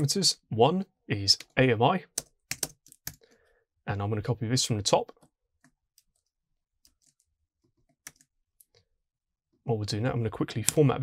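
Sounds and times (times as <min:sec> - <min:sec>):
computer keyboard keystrokes: 0:02.1 - 0:03.2.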